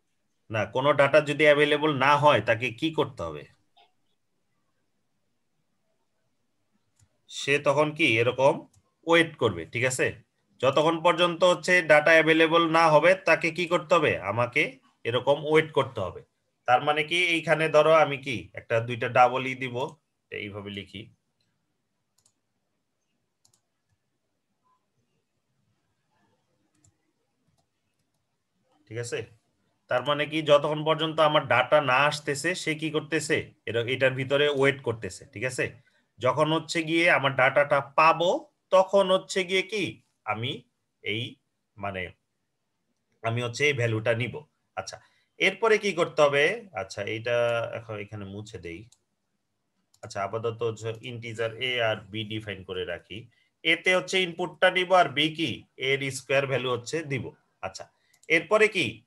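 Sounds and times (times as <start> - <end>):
man's voice: 0.5 - 3.5, 7.4 - 21.1, 28.9 - 29.3, 29.9 - 42.1, 50.0 - 59.0
faint computer clicks: 21.4 - 24.0.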